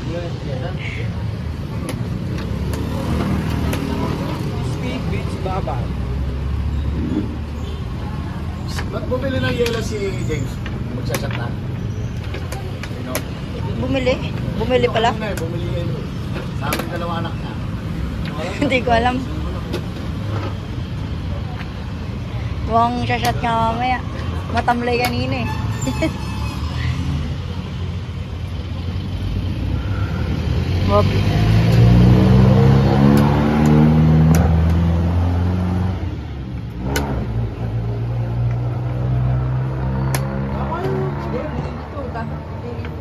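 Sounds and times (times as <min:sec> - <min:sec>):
street traffic rumble: 0:00.0 - 0:43.0.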